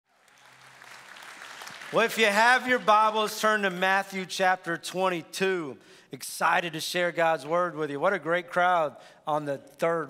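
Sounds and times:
congregation applauding: 0.1s - 3.8s.

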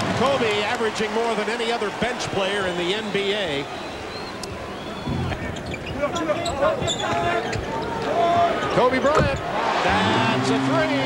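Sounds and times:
arena crowd: 0.0s - 11.0s.

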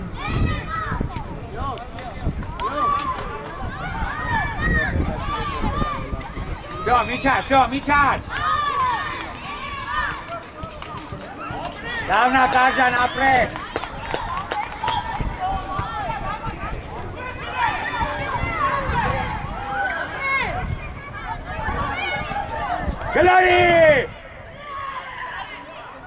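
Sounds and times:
people shouting: 2.5s - 26.0s.

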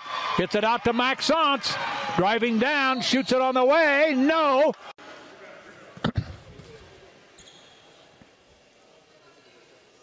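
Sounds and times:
faint shoe squeak: 7.4s - 8.1s.

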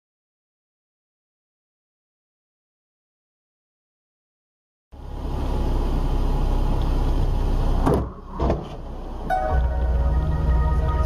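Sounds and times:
vehicle engine and road rumble: 4.9s - 11.0s
music with held tones: 9.3s - 11.0s.

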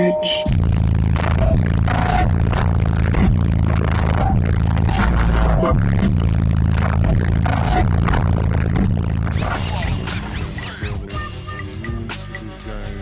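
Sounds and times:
bass-heavy music from car speakers: 0.0s - 13.0s.

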